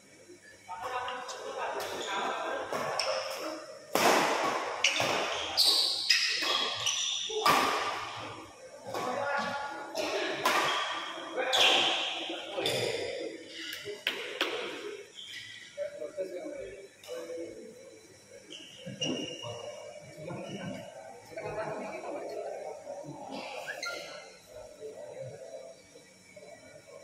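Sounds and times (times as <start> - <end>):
voices of players and spectators: 0.0 - 27.0.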